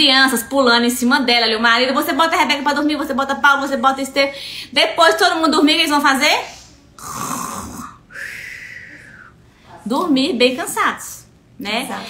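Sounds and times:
woman imitating snoring: 7.0s - 9.3s.

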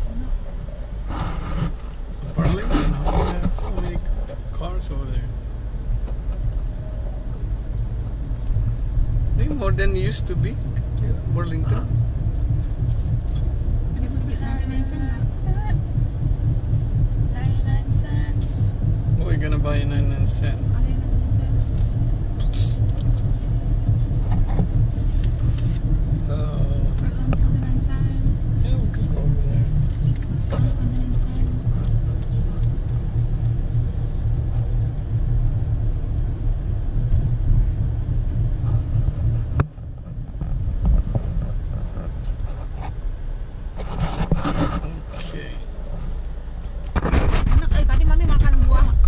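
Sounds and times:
car engine rumble: 0.0s - 49.0s
road noise: 0.0s - 49.0s.

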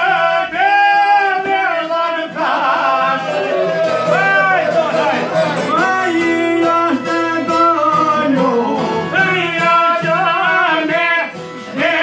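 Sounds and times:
men singing: 0.0s - 12.0s.

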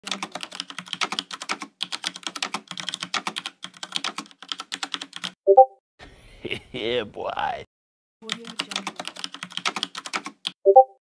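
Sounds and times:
rapid typing on keyboard: 0.0s - 5.4s, 8.2s - 10.6s.

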